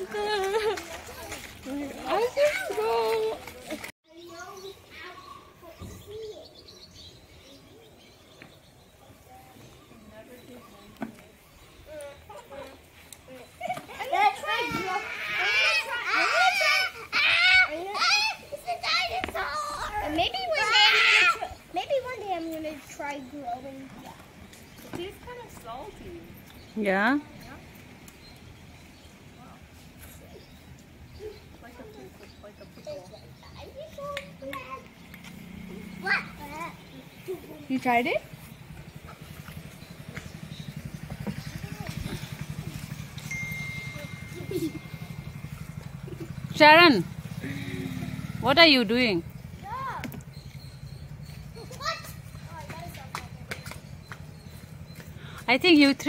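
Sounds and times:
children calling and chattering: 0.0 - 56.0
motor engine pulsing: 38.2 - 55.7.

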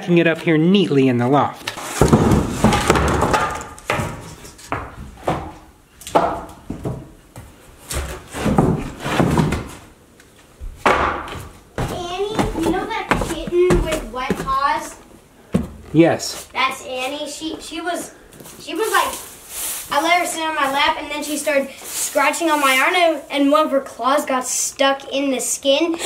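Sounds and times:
wooden boards knocking and clattering: 1.8 - 7.1, 7.9 - 9.8, 10.6 - 14.6
voices talking: 11.8 - 15.0, 19.9 - 25.4.

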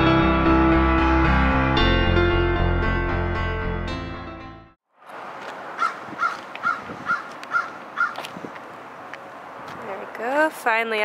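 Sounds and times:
piano background music: 0.0 - 4.8
bird calling: 5.8 - 8.3.

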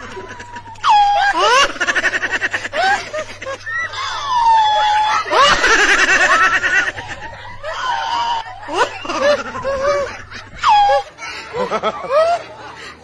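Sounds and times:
people calling: 0.0 - 13.0
people laughing loudly: 0.0 - 13.0.

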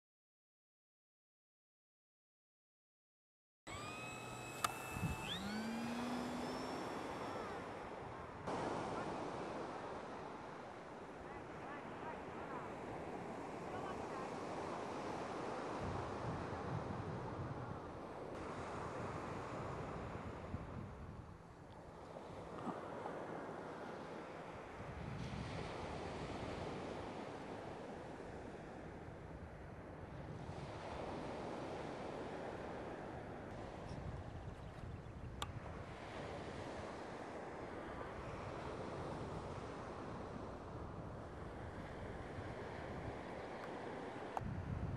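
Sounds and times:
wind noise on microphone: 3.7 - 10.1, 14.4 - 21.6, 24.8 - 27.2, 29.1 - 32.8, 44.4 - 44.9
electric motor and propeller whining: 3.7 - 10.2
sharp click: 4.1 - 7.2.

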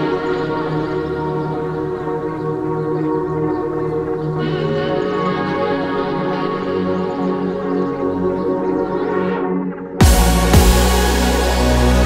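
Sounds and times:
ambient music with held tones: 0.0 - 12.0.

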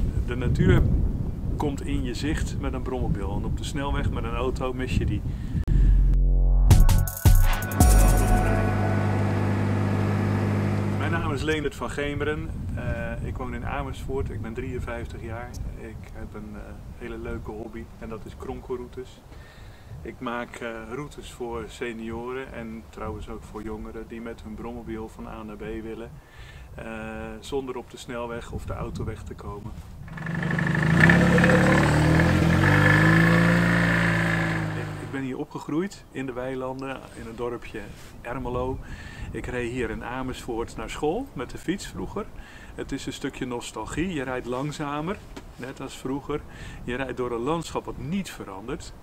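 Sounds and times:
faint high whine: 7.7 - 11.6
small car engine running: 8.6 - 11.1, 30.1 - 35.1.

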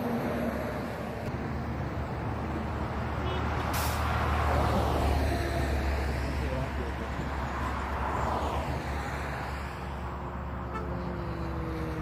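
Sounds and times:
motorway traffic passing: 0.0 - 12.0
brief sharp hiss: 3.7 - 4.2.

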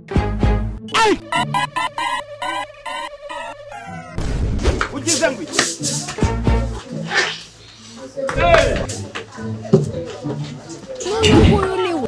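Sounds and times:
background music: 0.0 - 7.3
broom knocking on concrete: 4.7 - 6.3
broom swishing on concrete: 4.8 - 8.3.

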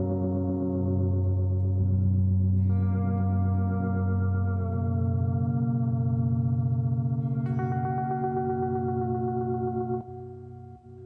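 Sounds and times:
electric guitar droning: 0.0 - 11.0.

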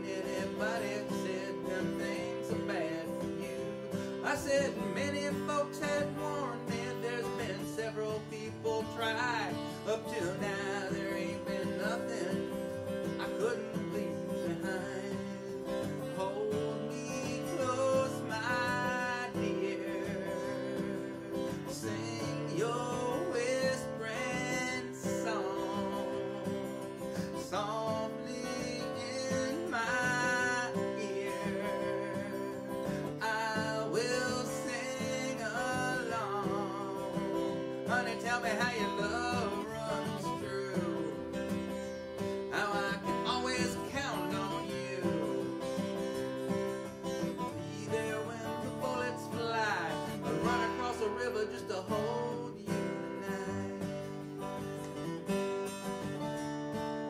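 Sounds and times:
acoustic guitar strumming and picking: 0.0 - 57.0.

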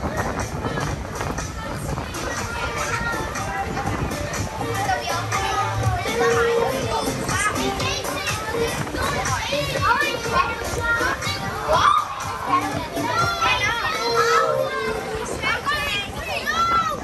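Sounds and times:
children squealing and chattering: 0.0 - 17.0.

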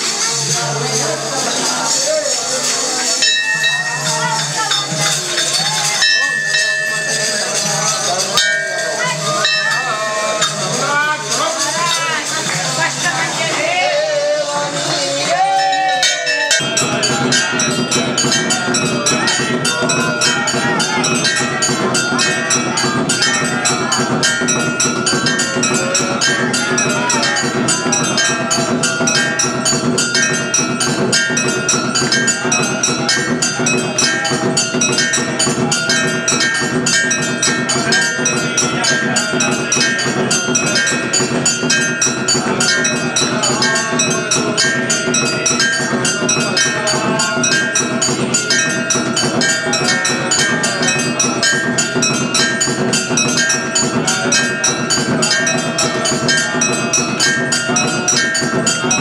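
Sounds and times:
fast percussion beating: 0.0 - 59.0
temple bells ringing rapidly: 0.0 - 59.0.

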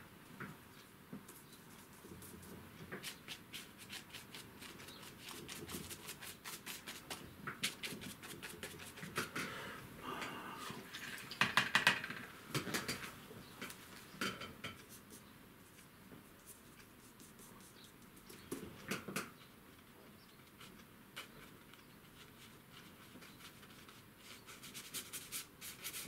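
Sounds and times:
paintbrush dabbing and scrubbing paper: 1.3 - 9.1, 14.8 - 18.3, 20.4 - 26.0.

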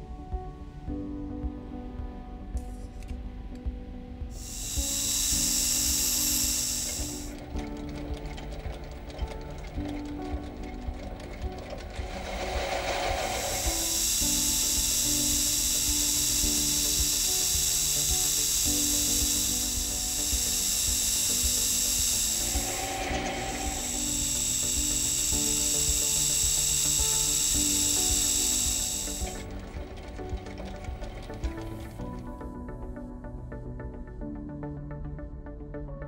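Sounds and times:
background music: 0.0 - 36.0
lathe cutting metal hiss: 4.3 - 9.8, 11.6 - 32.0.

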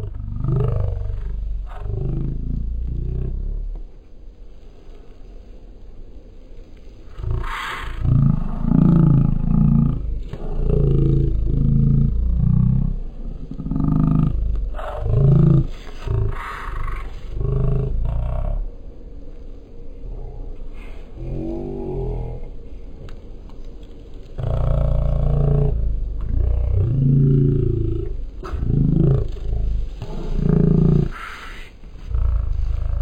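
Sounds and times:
slowed deep drawn-out sounds: 0.0 - 33.0
low rumble inside car: 7.1 - 18.8.

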